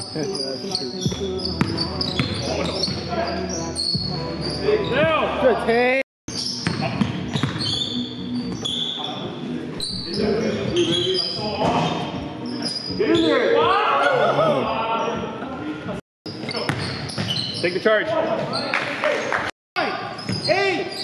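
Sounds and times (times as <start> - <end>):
sneakers squeaking: 0.0 - 5.4, 6.3 - 14.2, 16.3 - 18.9, 20.0 - 21.0.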